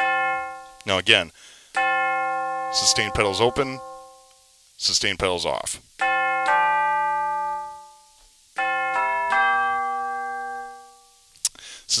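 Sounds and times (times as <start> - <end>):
tubular bell chime notes: 1.8 - 4.3, 6.0 - 11.2.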